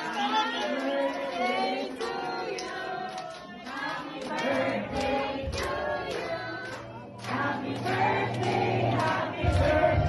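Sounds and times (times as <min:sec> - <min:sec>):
music: 0:00.0 - 0:10.0
voices singing together: 0:00.0 - 0:10.0.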